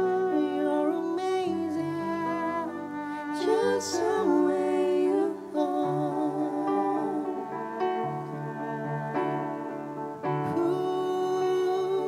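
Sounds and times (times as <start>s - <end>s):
cellos playing long held notes: 0.0s - 12.0s.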